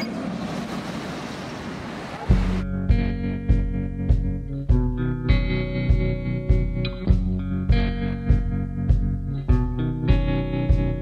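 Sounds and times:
tram passing: 0.0 - 2.6.

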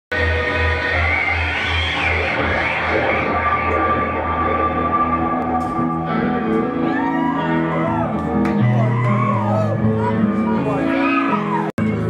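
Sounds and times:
echoing electric guitar: 0.1 - 12.0.

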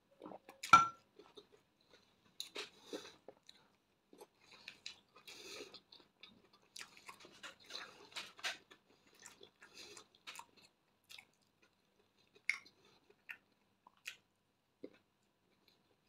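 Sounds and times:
person chewing bread: 0.2 - 16.0.

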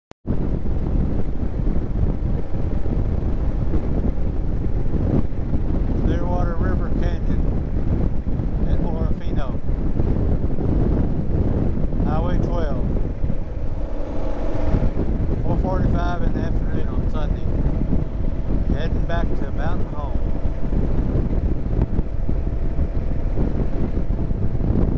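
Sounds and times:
wind buffeting microphone: 0.2 - 24.9
motorcycle engine running: 9.5 - 24.9.

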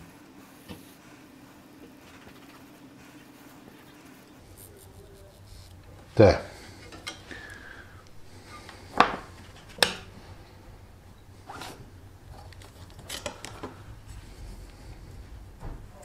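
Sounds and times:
tape peeled off metal rasping: 11.3 - 14.7.

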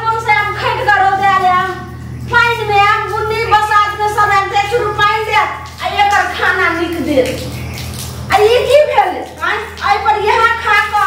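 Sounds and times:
woman speaking: 0.0 - 7.5, 8.3 - 11.0
steady low hum: 0.0 - 11.0.

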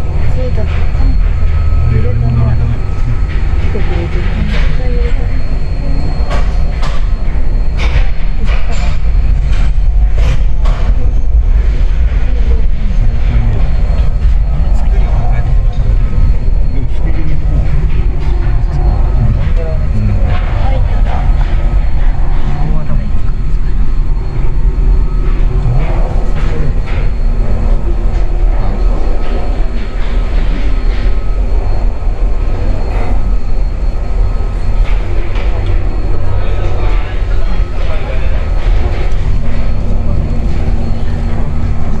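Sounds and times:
lift machinery low rumble: 0.0 - 42.0
machinery knocks and clanks: 0.0 - 42.0.

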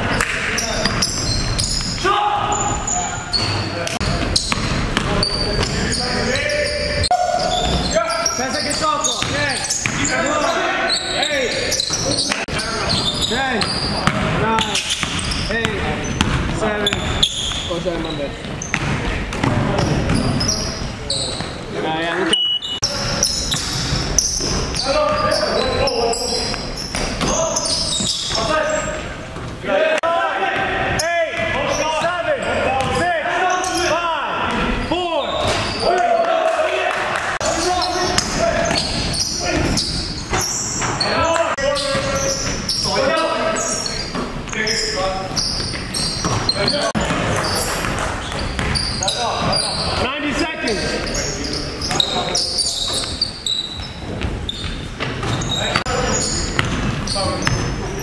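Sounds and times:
players' voices: 0.0 - 58.0
basketball bouncing on hardwood: 15.0 - 17.6, 18.4 - 20.2, 45.7 - 48.8, 56.6 - 57.6.

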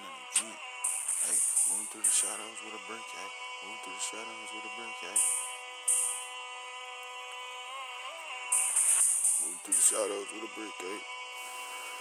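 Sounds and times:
sustained synth chord: 0.0 - 12.0
hi-hat hit: 0.8 - 2.4, 5.1 - 6.2, 8.5 - 10.1.

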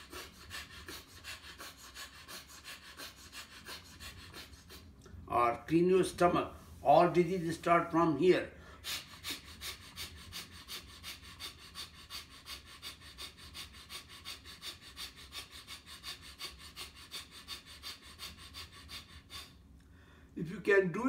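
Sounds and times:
man breathing forcefully: 0.0 - 5.2, 8.5 - 20.4.

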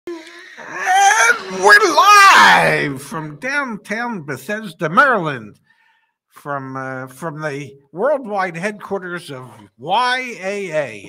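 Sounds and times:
person making wordless exclamations: 0.1 - 3.0.

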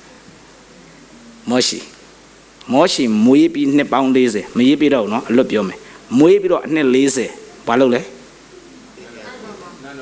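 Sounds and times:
audience murmuring: 7.1 - 10.0.

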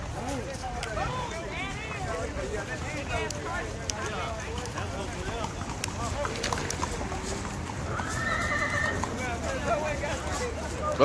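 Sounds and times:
people talking: 0.0 - 7.7, 8.8 - 11.0
horse hooves clopping: 0.0 - 11.0
horse neighing: 7.8 - 9.3.

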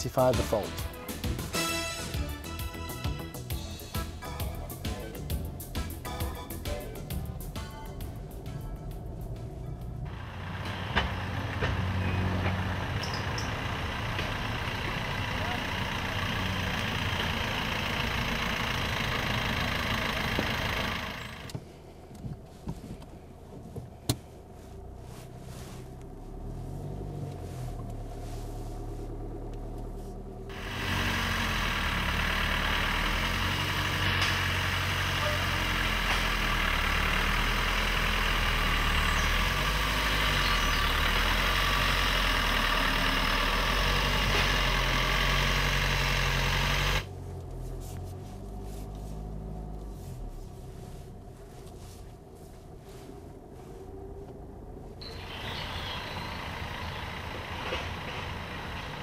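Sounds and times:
car engine running at low revs: 0.0 - 59.0.

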